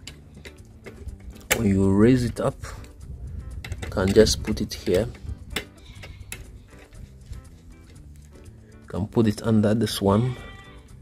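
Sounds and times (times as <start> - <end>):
faint background music: 0.0 - 11.0.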